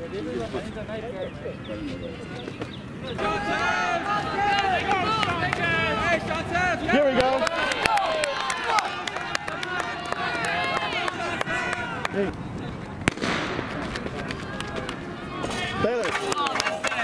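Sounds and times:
spectators talking and calling out: 0.0 - 17.0
starting pistol shot: 13.1 - 13.8.

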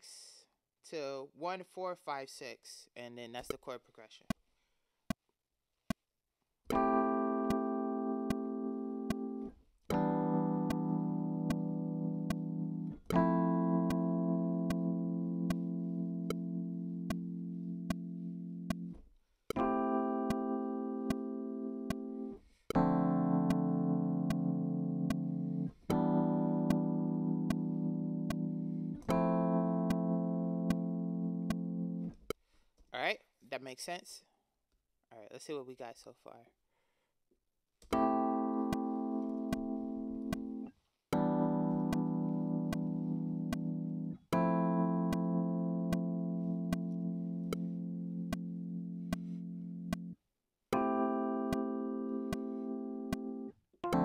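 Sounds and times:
metronome clicking: 6.7 - 32.2, 37.8 - 43.8, 45.0 - 49.3, 49.9 - 50.1, 51.5 - 54.0
keyboard chords: 6.7 - 32.3, 37.9 - 54.0.

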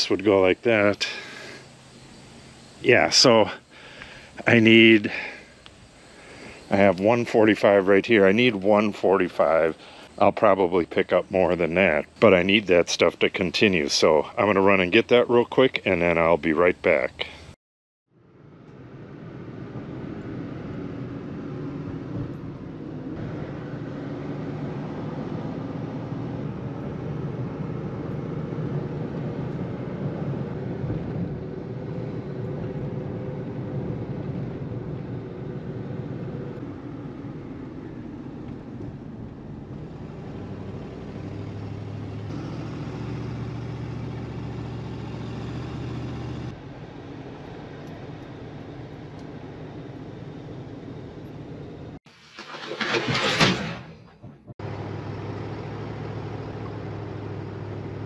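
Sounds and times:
car engine and road noise: 0.0 - 17.5, 18.1 - 58.0.

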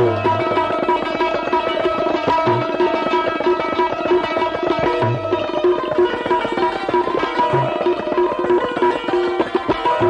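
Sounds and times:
tabla: 0.0 - 10.0.

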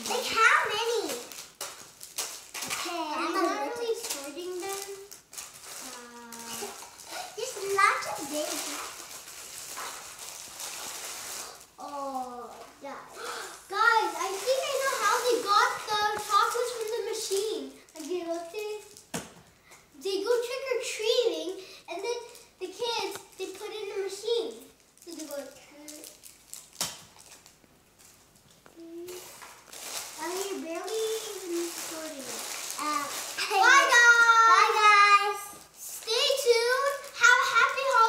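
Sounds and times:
young children talking: 0.0 - 1.3, 2.8 - 5.1, 5.8 - 8.9, 11.8 - 18.9, 30.2 - 38.0.

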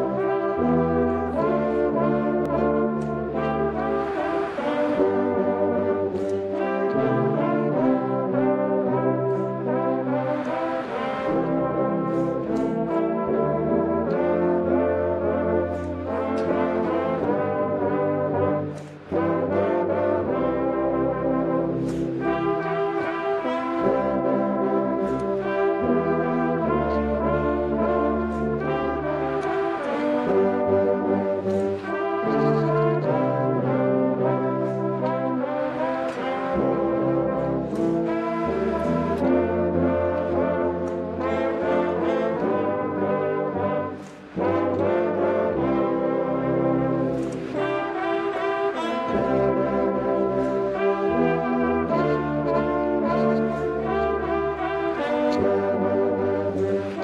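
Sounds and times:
brass band playing: 0.0 - 57.0.

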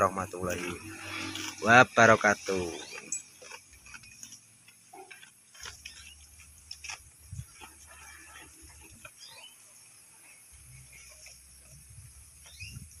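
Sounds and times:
goats chewing leaves: 0.0 - 13.0.

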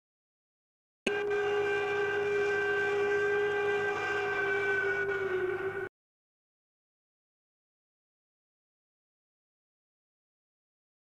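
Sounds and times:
steam whistle blowing: 1.1 - 5.9.

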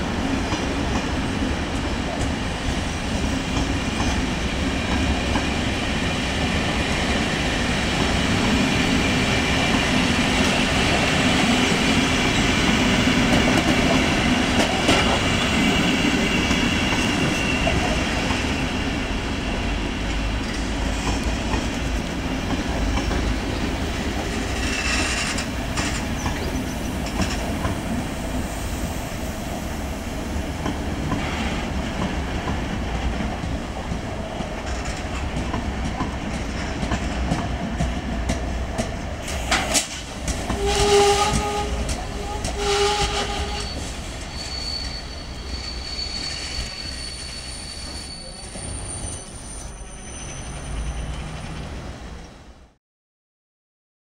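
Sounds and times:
railway wagons rumbling past: 0.0 - 52.8
train horn: 40.5 - 43.9.

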